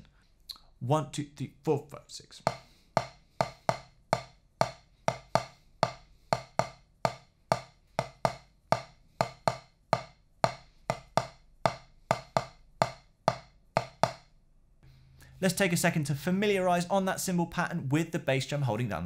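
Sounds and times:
drumstick tapping practice pad: 0:02.4 - 0:14.3.

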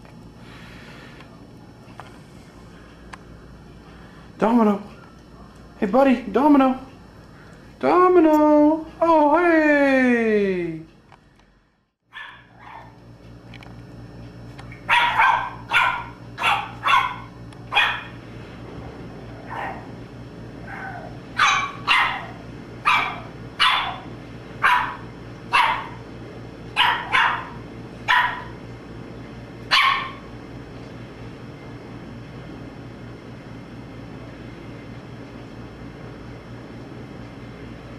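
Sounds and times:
puppy yapping: 0:12.1 - 0:13.0, 0:14.7 - 0:18.2, 0:20.6 - 0:26.0, 0:26.8 - 0:28.6, 0:29.7 - 0:30.3.

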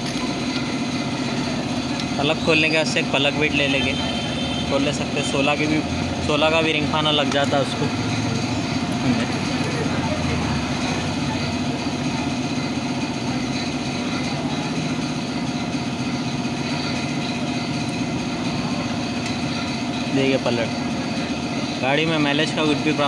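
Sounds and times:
machine droning steadily: 0:00.0 - 0:23.0.

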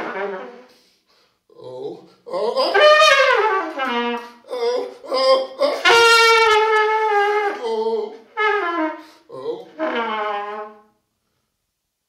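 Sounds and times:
solo trumpet playing: 0:00.0 - 0:00.8, 0:02.7 - 0:04.9, 0:05.5 - 0:07.6, 0:08.2 - 0:11.0.

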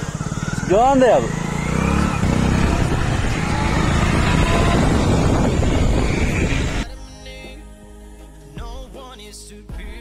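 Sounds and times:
motorcycle engine running: 0:00.0 - 0:06.9
wind rushing over microphone: 0:01.8 - 0:06.8.

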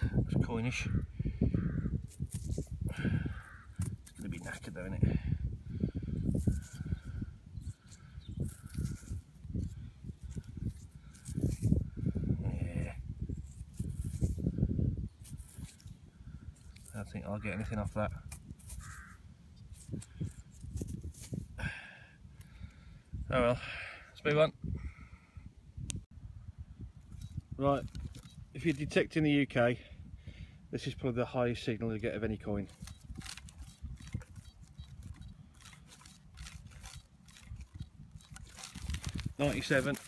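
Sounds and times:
thumb rubbing a coin: 0:01.6 - 0:05.0, 0:06.2 - 0:12.0, 0:13.3 - 0:14.6, 0:15.2 - 0:16.0, 0:16.6 - 0:21.5
dry straw rustling and crackling: 0:02.0 - 0:02.8, 0:07.6 - 0:12.0, 0:13.3 - 0:21.5, 0:32.6 - 0:40.0.

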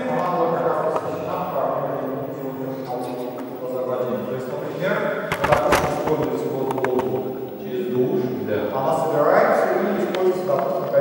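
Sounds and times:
man speaking in a hall: 0:00.0 - 0:11.0
sharp clicks: 0:05.3 - 0:07.6.

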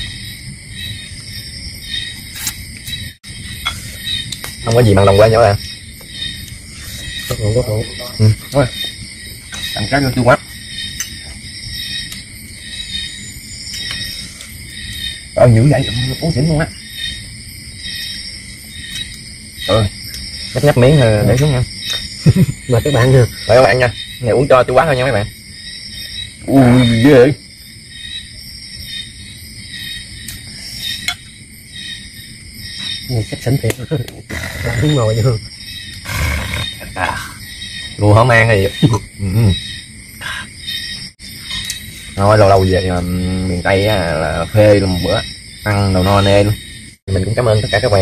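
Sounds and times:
night insects chirring: 0:00.0 - 0:48.0
man murmuring: 0:38.8 - 0:39.6.

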